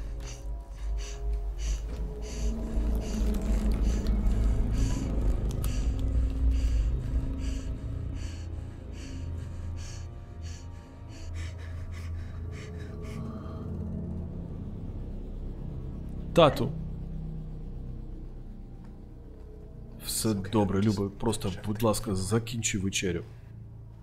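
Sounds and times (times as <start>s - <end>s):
panicked breathing and gasping: 0.0s - 14.5s
low rumbling drone score: 0.0s - 24.0s.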